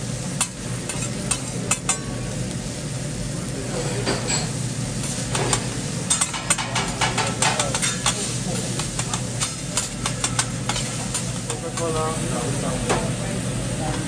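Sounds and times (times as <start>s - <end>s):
sizzling hot plate: 0.0s - 14.0s
metal spatulas scraping griddle: 5.3s - 12.0s.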